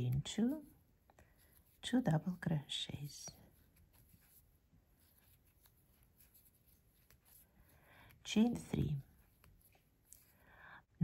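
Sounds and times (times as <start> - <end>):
thread rubbing over crochet hook: 0.0 - 10.4.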